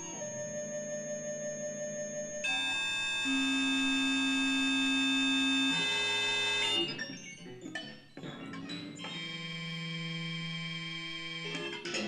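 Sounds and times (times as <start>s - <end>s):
held electronic chord: 2.1s - 6.9s.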